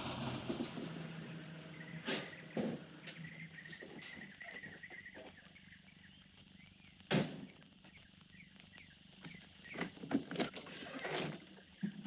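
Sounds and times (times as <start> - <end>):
birds chirping: 1.6 - 10.0.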